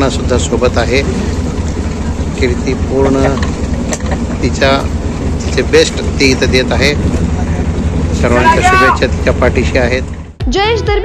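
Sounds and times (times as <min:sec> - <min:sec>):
motorboat engine rumble: 0:00.0 - 0:10.8.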